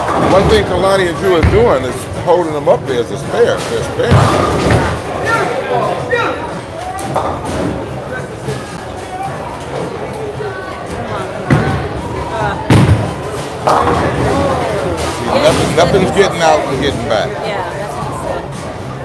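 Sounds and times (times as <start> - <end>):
voices in a hall: 0.0 - 19.0
bowling pins crashing: 12.6 - 15.8.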